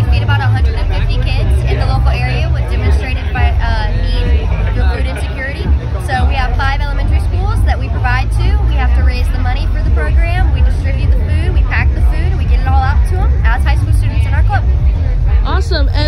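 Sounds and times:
woman talking: 0.0 - 14.7
loud low rumble: 0.0 - 16.0.

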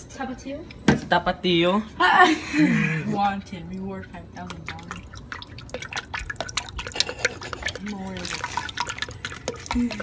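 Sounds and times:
sauce dripping into a cup: 4.4 - 10.0.

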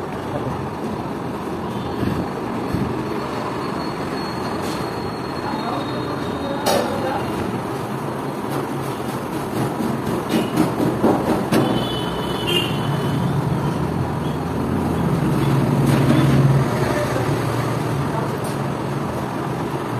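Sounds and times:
motor traffic noise: 0.0 - 19.9.

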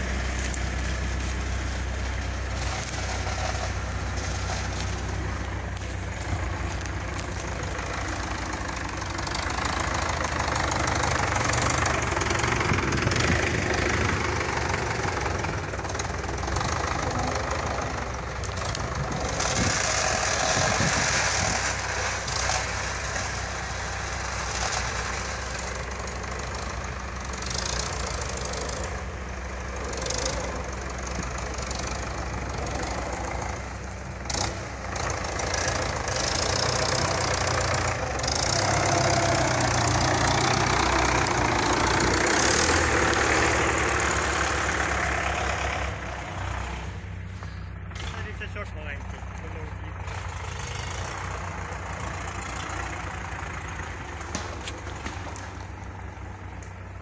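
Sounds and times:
tractor diesel engine under load: 0.0 - 57.0.

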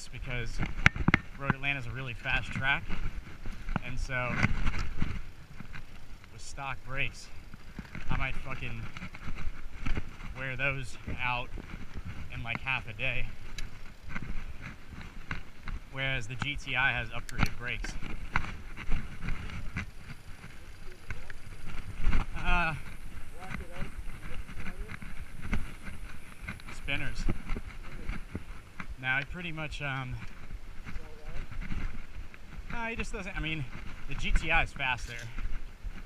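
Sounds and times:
bike rattling over dirt trail: 0.0 - 36.0
steady rushing noise: 0.0 - 36.0.

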